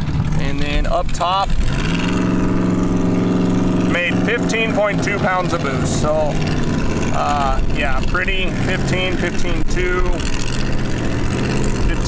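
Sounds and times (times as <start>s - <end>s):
engine idling: 0.0s - 12.0s.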